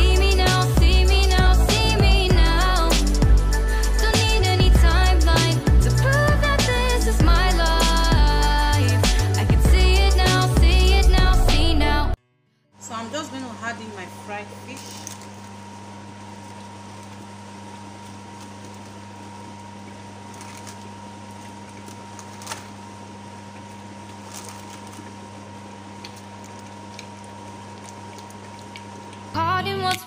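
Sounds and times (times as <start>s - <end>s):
music with singing: 0.0s - 12.2s, 29.4s - 30.0s
electric hob humming: 0.0s - 30.0s.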